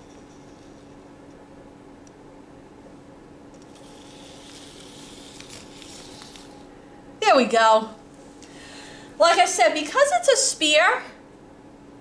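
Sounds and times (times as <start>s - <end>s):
low steady hum: 0.0s - 12.0s
robot ball motors whirring: 3.6s - 6.6s.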